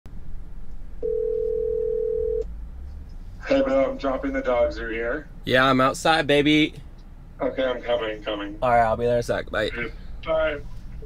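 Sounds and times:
low steady rumble: 0.1 - 11.0
telephone ringing tone: 1.0 - 2.4.

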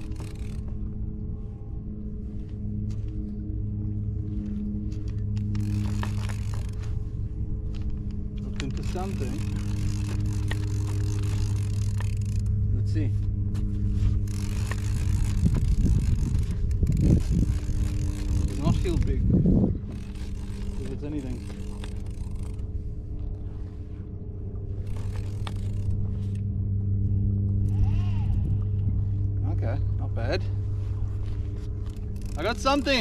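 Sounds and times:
low motor hum: 0.0 - 33.0.

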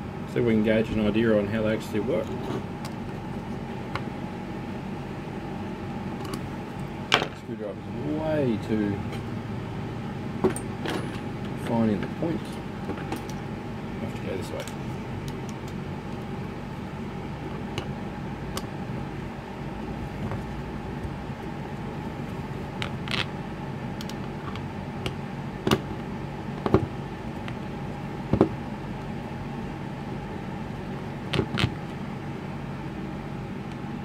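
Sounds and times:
steady machine hum: 0.0 - 34.0.

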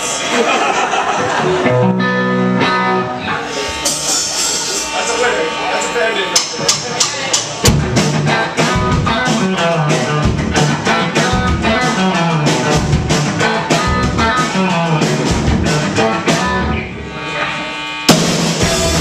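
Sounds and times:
distorted electric guitar: 0.0 - 19.0
bass guitar: 1.1 - 4.9, 6.5 - 19.0
drum kit fast beat: 6.4 - 16.7, 18.1 - 19.0.

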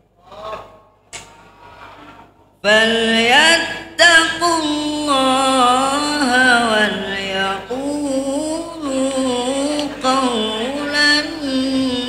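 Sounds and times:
boy reciting through a microphone: 2.6 - 12.0.

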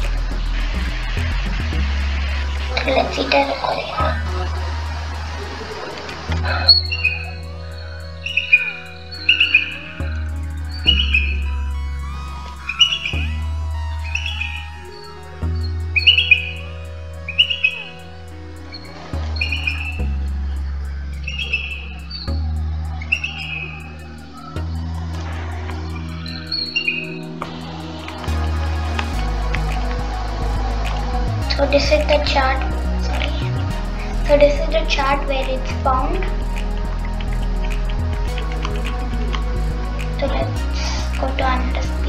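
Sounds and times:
background music with low bass: 0.0 - 42.0
eagle chirping calls: 18.6 - 28.2.

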